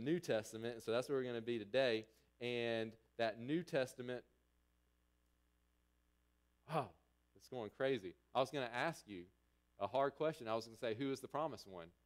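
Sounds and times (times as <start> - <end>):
faint steady hum: 0.0 - 12.0
man exclaiming: 6.7 - 6.9.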